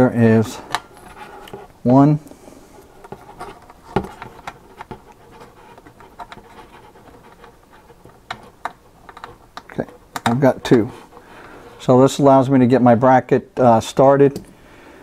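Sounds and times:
scraping handling noises: 0.3s - 12.0s.

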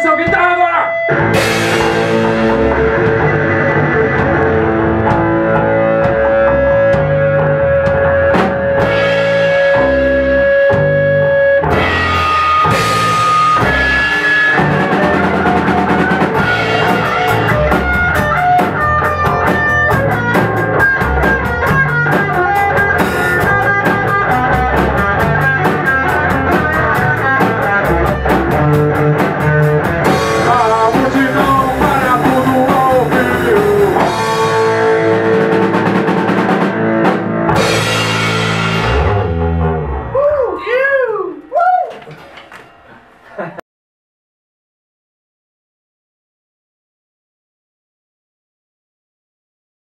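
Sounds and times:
electric guitar lead: 0.0s - 43.2s
rock band playing: 0.0s - 43.5s.

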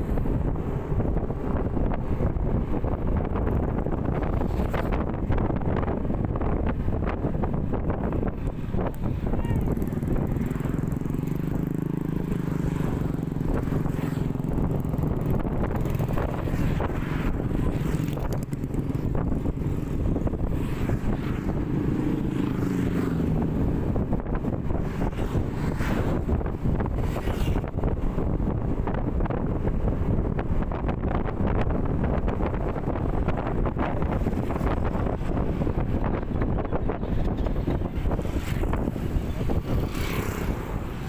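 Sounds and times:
wind rushing over microphone: 0.0s - 41.0s
scooter engine running: 9.6s - 16.2s.

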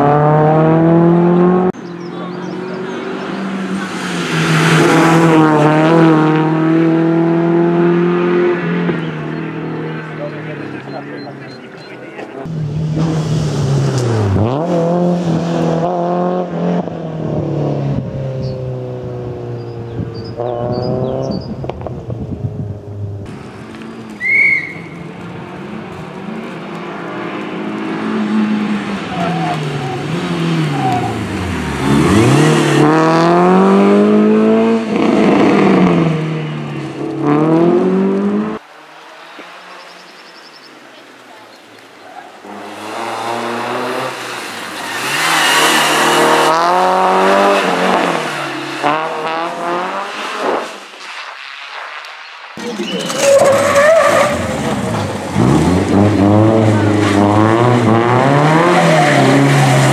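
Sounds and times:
rally car engine revving: 0.0s - 38.7s, 42.4s - 52.0s, 52.6s - 59.9s.

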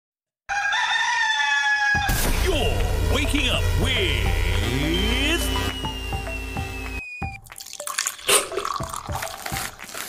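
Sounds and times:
rooster crowing: 0.5s - 2.2s.

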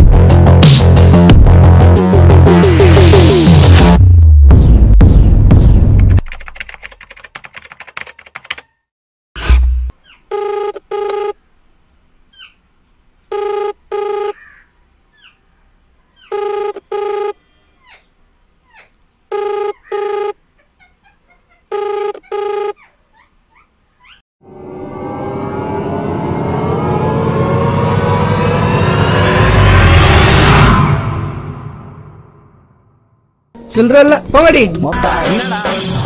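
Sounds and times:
music: 0.0s - 6.2s, 33.6s - 36.0s
telephone ringback tone beeps: 10.3s - 11.4s, 13.3s - 14.4s, 16.3s - 17.4s, 19.3s - 20.4s, 21.7s - 22.8s
loud hit: 25.0s - 33.2s.

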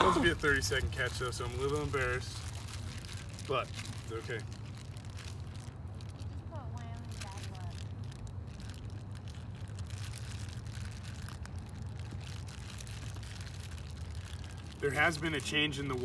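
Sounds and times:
low rumble: 0.0s - 14.9s.

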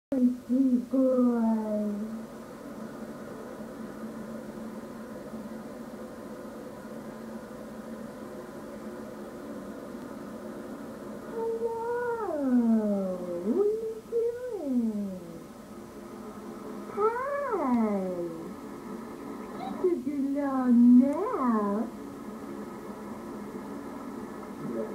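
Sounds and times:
videotape hum: 0.1s - 24.9s.

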